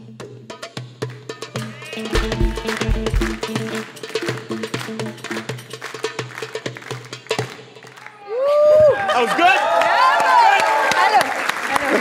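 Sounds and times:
goblet drum played by hand: 0:00.1 - 0:07.6.

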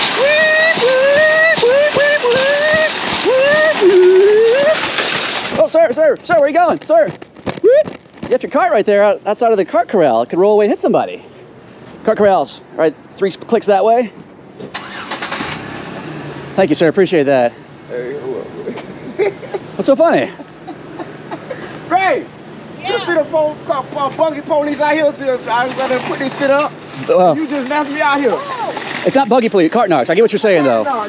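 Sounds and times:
car engine starting and running: 0:00.0 - 0:05.8, 0:14.6 - 0:18.7
shopping cart wheels rattling: 0:00.0 - 0:07.1, 0:23.7 - 0:31.0
man imitating police siren: 0:00.1 - 0:04.8.

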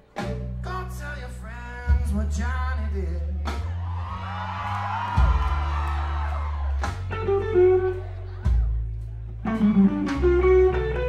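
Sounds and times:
bass guitar notes: 0:00.0 - 0:11.0
electric guitar lead: 0:07.0 - 0:08.6, 0:09.3 - 0:11.0.

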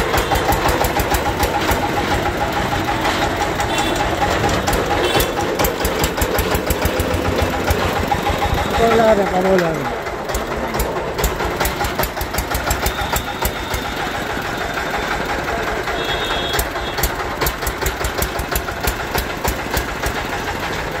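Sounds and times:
diesel engine running: 0:00.0 - 0:21.0.

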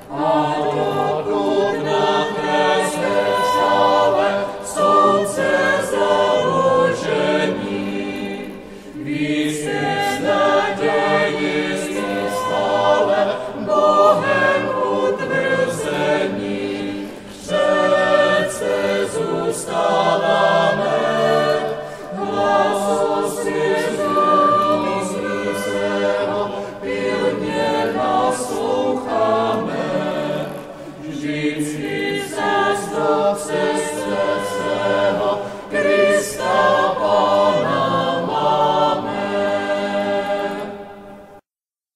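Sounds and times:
choir singing a hymn: 0:00.0 - 0:41.4.

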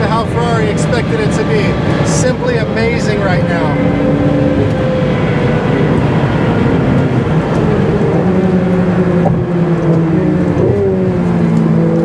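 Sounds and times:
sports car engine running: 0:00.0 - 0:12.0
tyre and road noise: 0:00.0 - 0:12.0.

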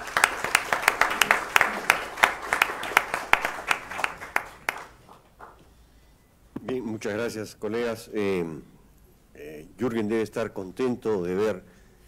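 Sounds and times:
audience applauding: 0:00.0 - 0:05.6.

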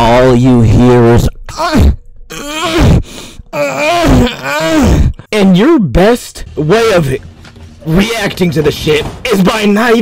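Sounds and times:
person making wordless vocal sounds: 0:01.7 - 0:05.3.

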